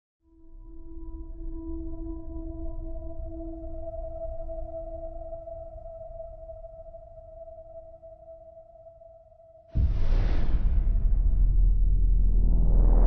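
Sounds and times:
loud impact hit: 9.8 - 13.0
low rumble: 9.8 - 13.0.

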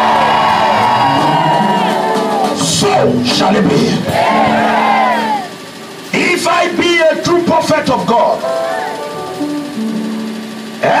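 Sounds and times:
electronic keyboard sustained notes: 0.0 - 11.0
man talking: 2.6 - 4.1, 6.2 - 8.5.

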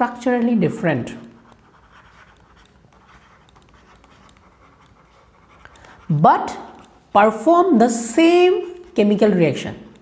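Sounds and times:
stylus writing on tablet: 0.0 - 10.0.

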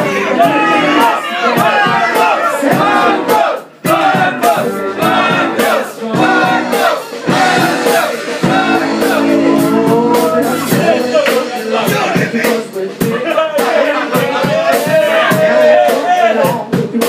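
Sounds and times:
live rock band playing: 0.0 - 17.0
woman singing lead: 5.0 - 13.2.

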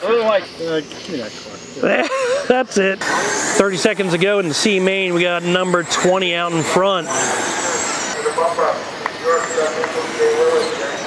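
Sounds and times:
faint voices: 0.0 - 11.0
tyres on dirt: 0.0 - 11.0
electric motor whine: 0.1 - 11.0.

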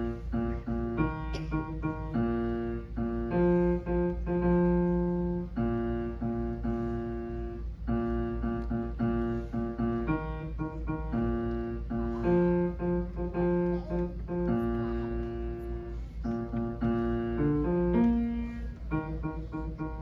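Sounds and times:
piano playing low notes: 0.0 - 20.0.

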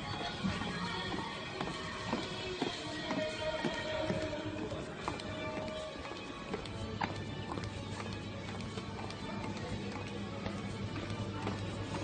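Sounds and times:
background music: 0.0 - 12.0
shoes clicking on hard floor: 0.0 - 12.0.

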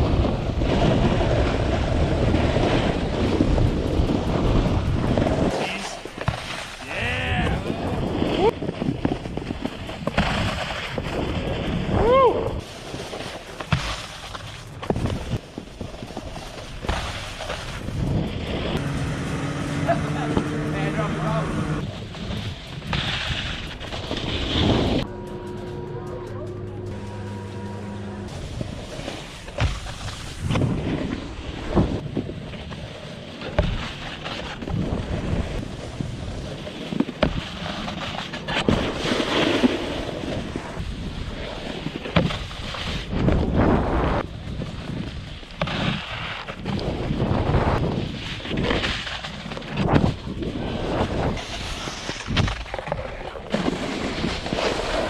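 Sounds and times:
wind buffeting microphone: 0.0 - 6.3, 6.9 - 12.9, 17.7 - 25.1, 40.1 - 53.1
snowboard scraping over snow: 0.0 - 25.1, 26.8 - 55.0
held music-like tones: 25.0 - 29.5.

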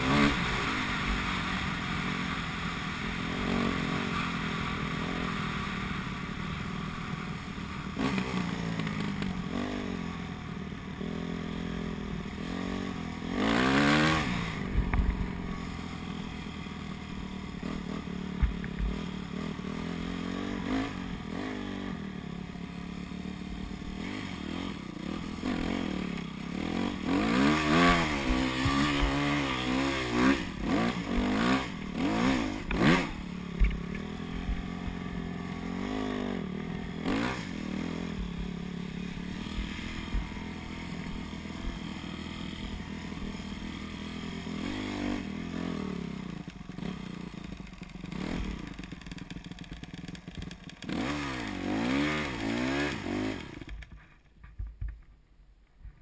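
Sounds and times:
dirt bike engine revving: 0.0 - 53.8.

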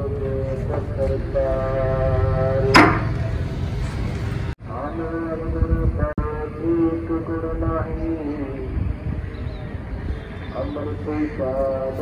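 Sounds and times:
religious chant over loudspeaker: 0.0 - 3.4, 4.7 - 9.2, 10.4 - 12.0.

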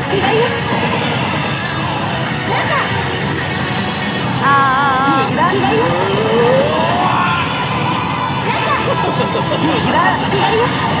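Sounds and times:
dense background din: 0.0 - 11.0
slot machine music: 2.4 - 7.2.

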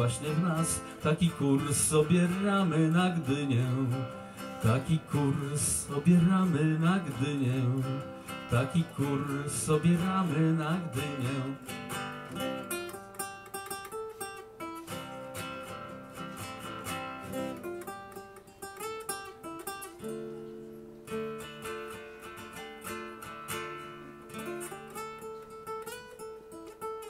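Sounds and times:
solo acoustic guitar: 0.0 - 27.0.

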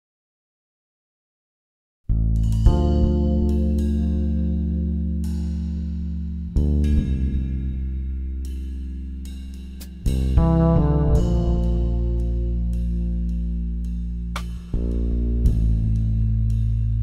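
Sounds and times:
fretless bass notes: 2.1 - 17.0.

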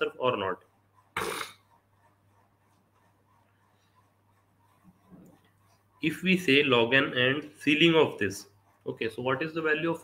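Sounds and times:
man clearing his throat: 1.2 - 1.6.

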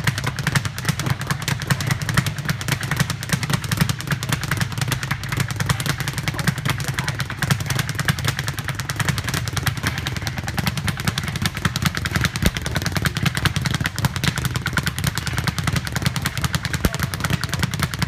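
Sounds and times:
speed bag rapid rattle: 0.0 - 18.0.

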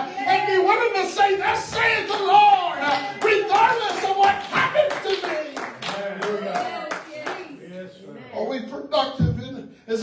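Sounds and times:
congregation clapping in rhythm: 0.7 - 7.6.

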